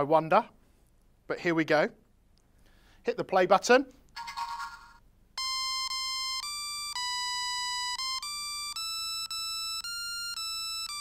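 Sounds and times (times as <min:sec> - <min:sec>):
electronic beep melody: 0:04.2 - 0:11.0.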